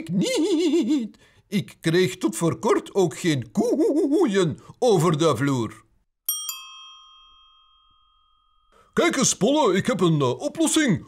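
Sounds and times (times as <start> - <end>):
small metal bell ringing: 6.3 - 8.9.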